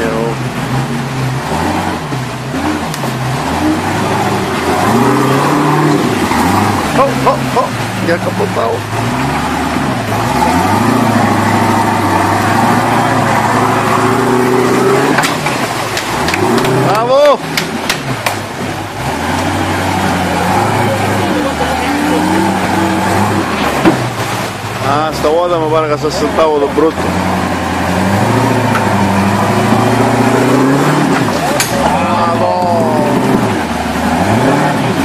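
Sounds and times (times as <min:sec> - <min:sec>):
vehicle engine revving: 0:00.0 - 0:35.0.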